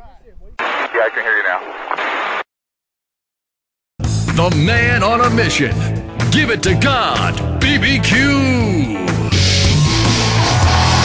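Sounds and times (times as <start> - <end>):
muffled person's voice: 0.0 - 1.8.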